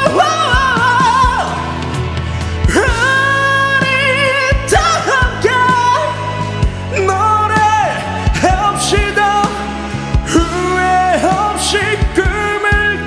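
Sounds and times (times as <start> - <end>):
karaoke backing track: 0.0 - 13.0
man singing a pop ballad: 0.0 - 13.0.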